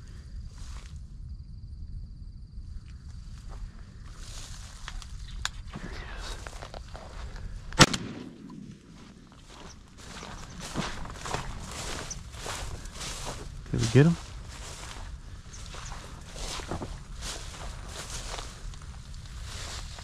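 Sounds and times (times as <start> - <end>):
footsteps through dry brush: 3.3 - 7.9, 8.7 - 20.0
shotgun shot: 7.8 - 8.7.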